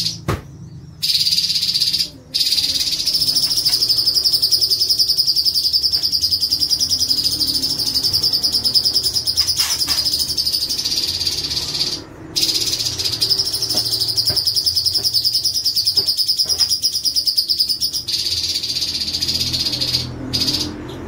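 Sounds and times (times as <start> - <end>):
bird singing fast trill: 0.0 - 21.0.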